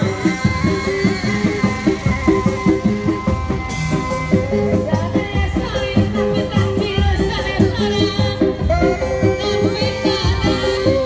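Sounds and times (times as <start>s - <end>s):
high wavering melody: 0.0s - 6.2s
sustained tones: 0.0s - 6.2s
rhythmic drumming: 0.0s - 11.0s.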